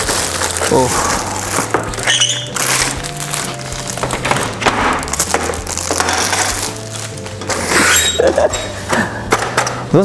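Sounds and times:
plastic film crinkling: 0:00.0 - 0:08.8.

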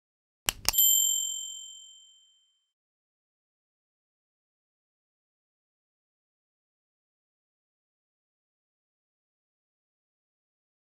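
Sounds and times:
notification bell ding: 0:00.7 - 0:02.5.

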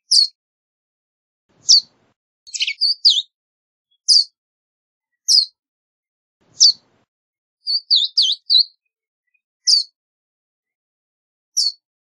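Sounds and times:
bird chip calls: 0:00.1 - 0:00.4, 0:01.6 - 0:01.9, 0:02.5 - 0:03.3, 0:04.1 - 0:04.3, 0:05.2 - 0:05.6, 0:06.5 - 0:06.8, 0:07.7 - 0:08.8, 0:09.6 - 0:09.9.

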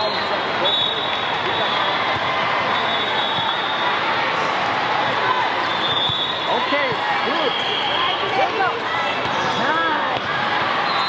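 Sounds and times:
echoing din of voices: 0:00.0 - 0:11.0.

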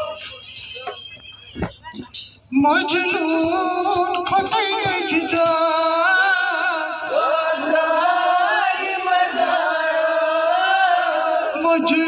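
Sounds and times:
women singing folk song: 0:02.6 - 0:12.0.

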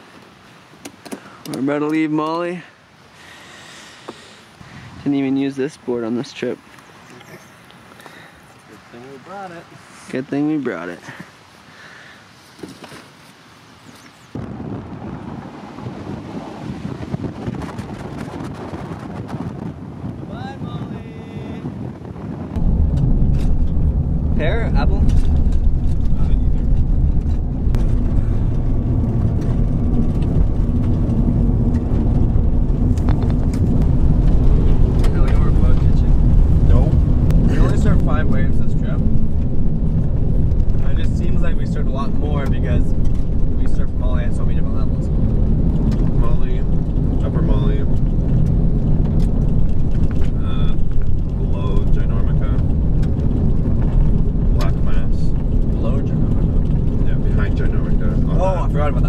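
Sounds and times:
car tyres and engine rumble: 0:00.0 - 0:59.0.

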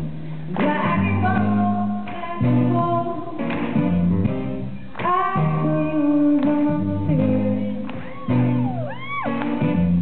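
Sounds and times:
woman singing: 0:00.5 - 0:03.8, 0:05.0 - 0:08.5.

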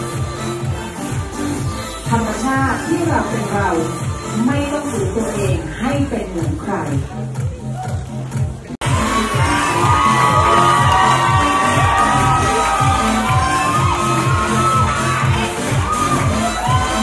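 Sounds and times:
pop dance music: 0:00.0 - 0:17.0
audience cheering and shouting: 0:08.8 - 0:17.0.

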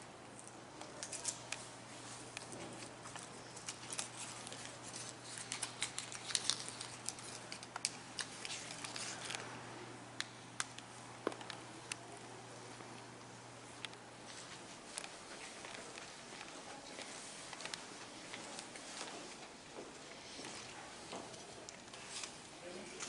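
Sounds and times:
steady low hum: 0:00.0 - 0:23.0
footsteps: 0:13.6 - 0:22.4.

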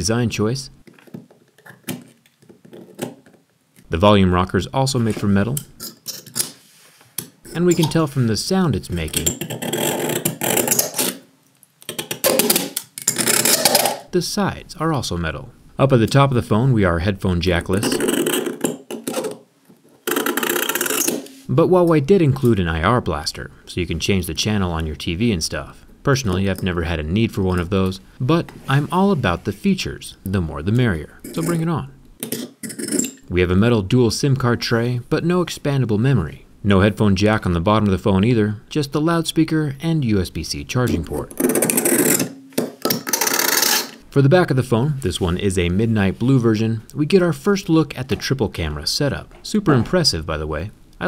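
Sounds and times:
razor blade scraping metal: 0:09.2 - 0:11.2, 0:12.3 - 0:14.0, 0:20.1 - 0:21.4, 0:32.2 - 0:33.2, 0:41.3 - 0:44.0.

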